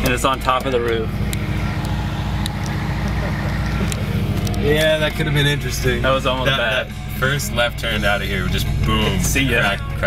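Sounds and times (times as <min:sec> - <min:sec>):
car engine running: 0:00.0 - 0:10.0
road noise: 0:00.0 - 0:10.0.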